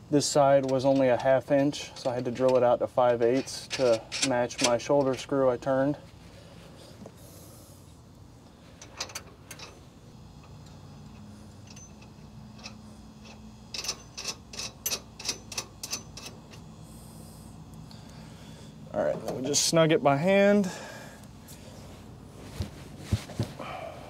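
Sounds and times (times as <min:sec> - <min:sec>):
faint steady hum: 0:00.0 - 0:24.0
metal clicks of bolt and nut: 0:00.6 - 0:05.2, 0:08.8 - 0:09.8, 0:10.4 - 0:16.6.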